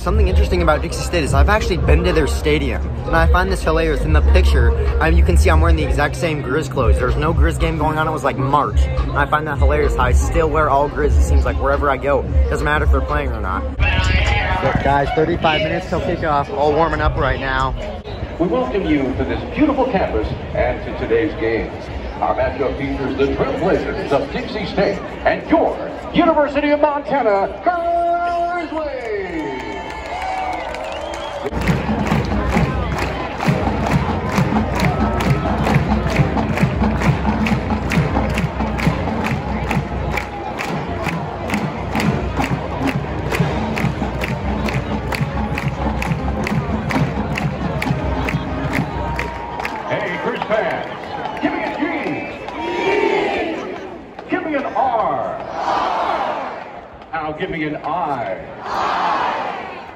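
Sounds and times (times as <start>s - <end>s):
crowd cheering and shouting: 0.0s - 20.5s, 23.3s - 59.9s
marching band playing: 31.5s - 49.4s
marching drums beat: 31.6s - 40.1s.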